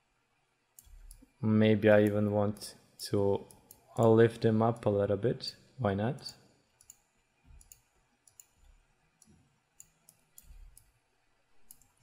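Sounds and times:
computer mouse clicks: 0.8s - 1.3s, 6.8s - 11.0s, 11.6s - 12.0s.

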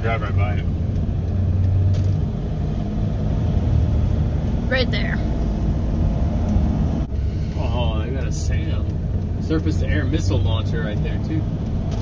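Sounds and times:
van rumbling inside cabin: 0.0s - 12.0s.

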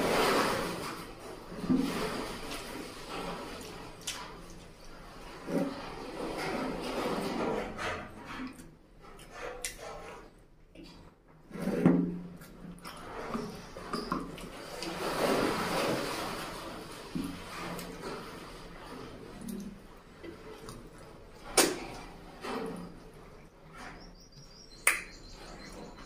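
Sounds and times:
crackling rustle: 0.0s - 8.4s
wet squishes of fingers in food: 1.9s - 5.9s, 16.8s - 23.5s.

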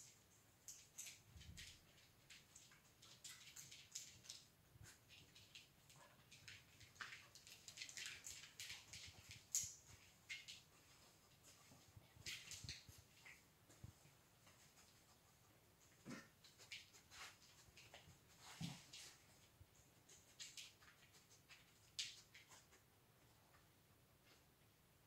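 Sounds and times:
dog claws clicking on floor: 0.0s - 13.9s, 20.0s - 22.8s.

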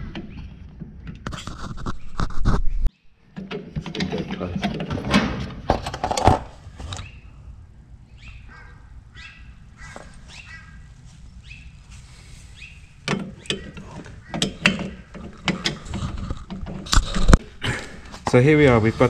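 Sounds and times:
metal tools clanking: 13.1s - 17.4s.

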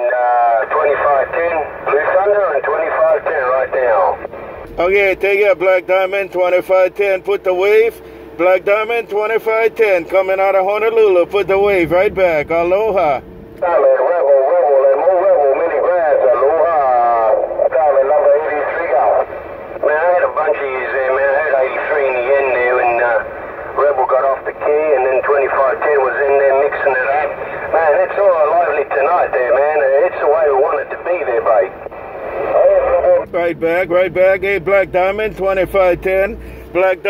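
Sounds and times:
narrow-band radio speech: 0.0s - 37.0s.

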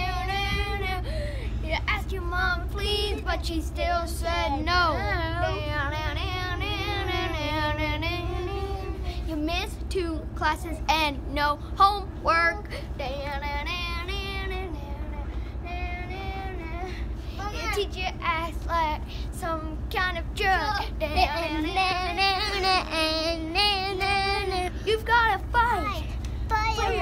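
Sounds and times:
steady low rumble: 0.0s - 27.0s.

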